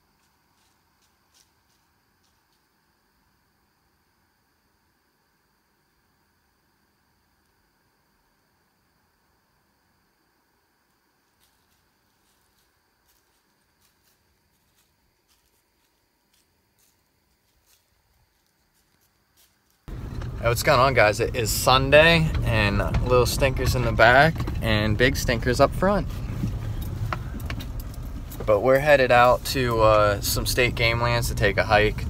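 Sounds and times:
faint ticks and crackles: 0.0s - 3.7s, 5.8s - 32.0s.

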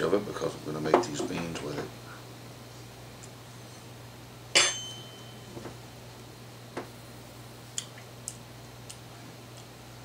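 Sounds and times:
metal spoon clinking on dish: 4.6s - 5.5s.

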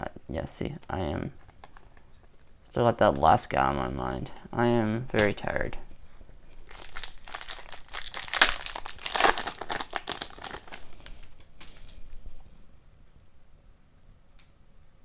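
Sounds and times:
foil wrapper tearing and crinkling: 6.6s - 11.9s.

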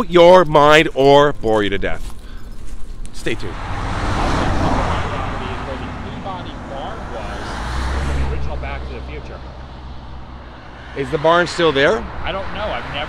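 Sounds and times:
vehicle engine hum: 3.2s - 13.0s.

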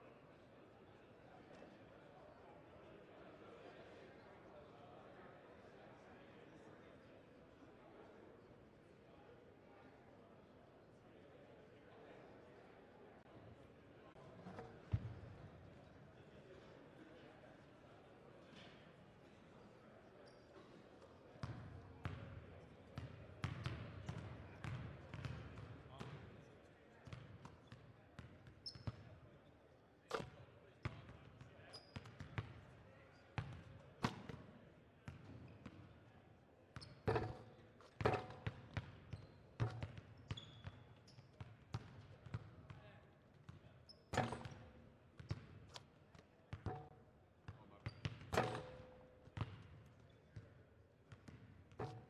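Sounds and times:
indistinct crowd chatter: 0.0s - 28.1s.

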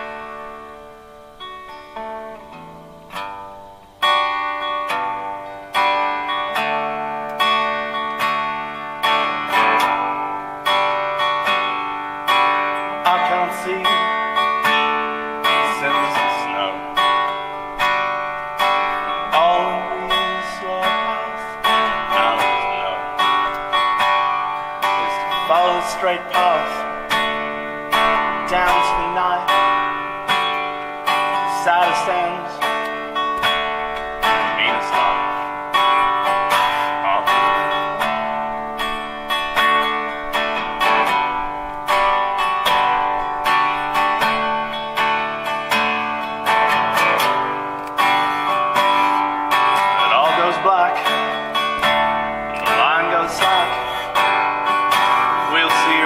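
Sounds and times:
acoustic guitar picking and strumming: 0.0s - 56.0s.

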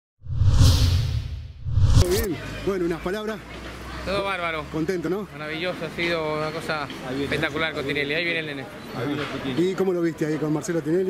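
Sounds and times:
deep rumble: 0.2s - 2.1s
loud rushing whoosh: 0.2s - 2.3s.

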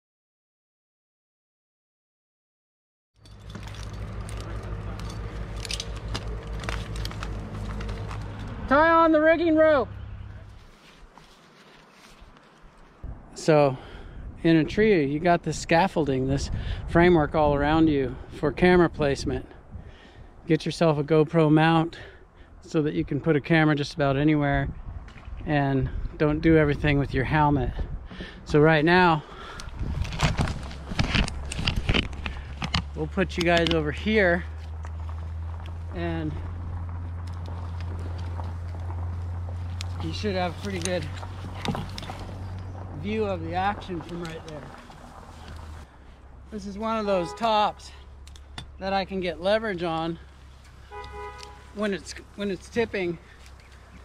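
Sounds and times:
harness gear clinking: 3.2s - 8.7s, 29.6s - 45.9s, 49.8s - 54.0s
rustling of needles and twigs: 3.2s - 8.8s, 9.9s - 13.1s, 29.3s - 47.2s, 48.0s - 54.0s
steady low rumble: 24.3s - 54.0s.

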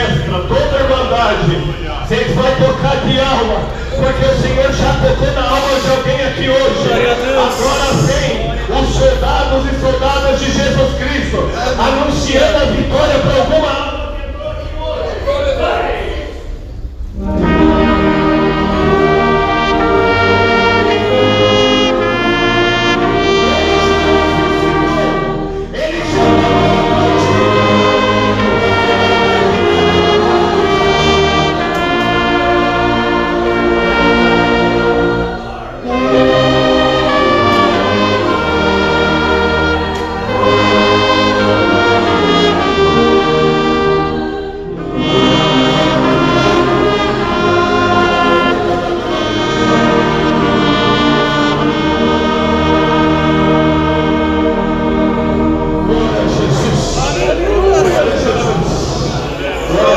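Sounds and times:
brass orchestra playing: 0.0s - 14.2s, 15.0s - 59.9s
congregation singing a hymn: 0.0s - 14.4s, 15.0s - 59.9s.

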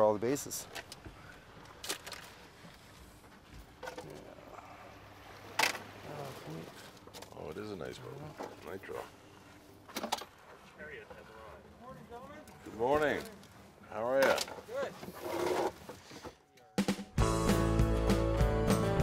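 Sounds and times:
country guitar music: 17.1s - 19.0s.

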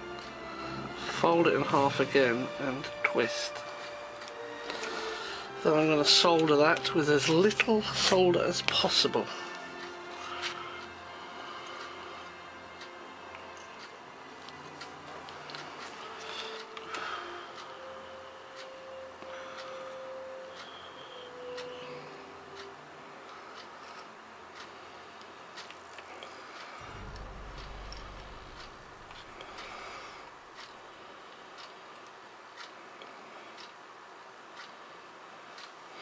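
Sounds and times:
faint background music: 0.0s - 36.0s
soldering ticks and clicks: 3.5s - 5.1s, 6.2s - 34.8s, 35.5s - 35.8s
low rumble: 26.8s - 30.6s.

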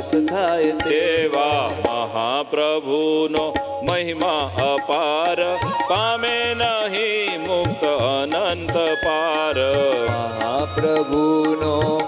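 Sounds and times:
tabla strokes: 0.0s - 2.4s, 3.1s - 12.0s
man singing devotional song: 0.0s - 12.0s.

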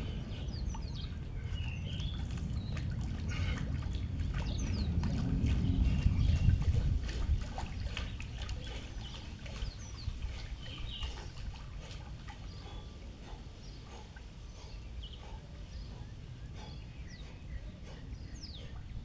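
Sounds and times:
low rumble: 0.0s - 13.1s
birds chirping: 0.0s - 19.0s
water sloshing and splashing: 0.0s - 19.0s.

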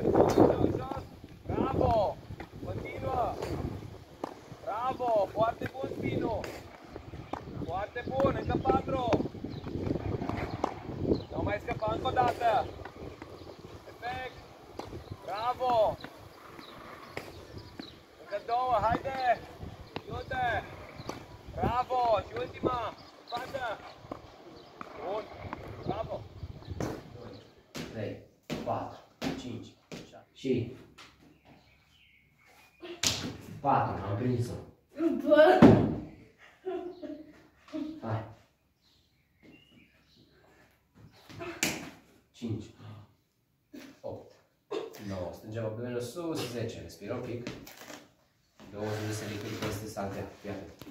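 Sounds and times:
tennis balls struck by rackets: 1.8s - 20.3s, 21.0s - 25.7s, 26.7s - 30.1s, 33.0s - 33.5s, 41.3s - 42.1s
balls bouncing on clay court: 1.8s - 30.2s
ball slapping into hands: 33.0s - 33.5s, 41.4s - 42.0s.

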